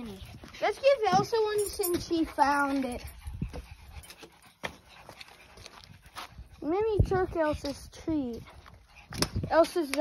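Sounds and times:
footsteps scuffing over dirt: 0:00.2 - 0:09.8.

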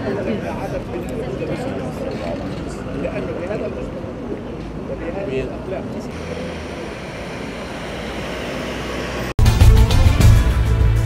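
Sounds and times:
street noise: 0:00.0 - 0:11.0
car passing close by: 0:06.1 - 0:09.4.

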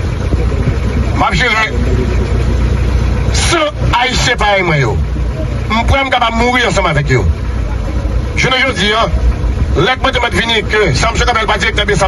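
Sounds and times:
steady low rumble: 0:00.0 - 0:12.0
man speaking: 0:00.4 - 0:02.6, 0:03.2 - 0:07.4, 0:08.3 - 0:12.0.

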